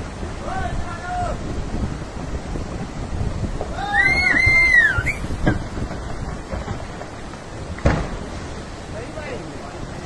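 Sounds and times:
landslide rumble: 0:00.0 - 0:10.0
sharp thud: 0:07.8 - 0:08.2.

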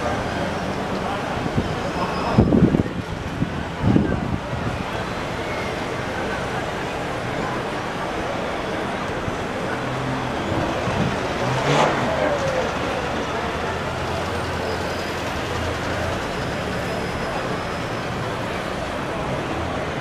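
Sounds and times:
cars passing: 0:00.0 - 0:20.0.

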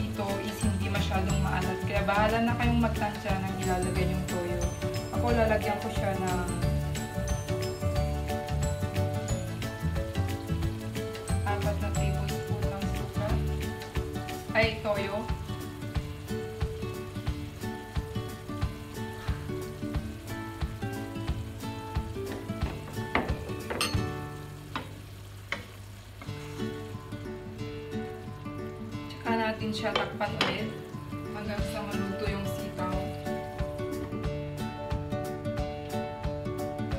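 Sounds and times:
food sizzling in a wok: 0:00.0 - 0:36.9
light background music: 0:00.0 - 0:36.9
metal spoon clinking: 0:23.7 - 0:24.1.

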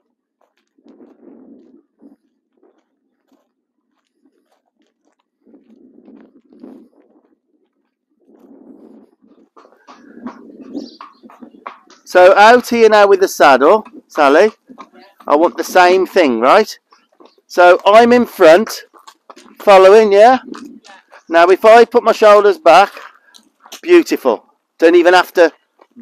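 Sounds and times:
footsteps on gravel: 0:00.0 - 0:26.0
horse hooves on gravel: 0:00.0 - 0:26.0.

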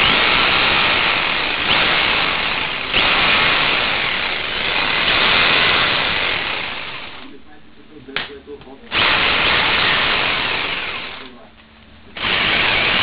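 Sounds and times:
rotary hammer running: 0:00.0 - 0:07.4, 0:08.9 - 0:11.5, 0:12.1 - 0:13.0.

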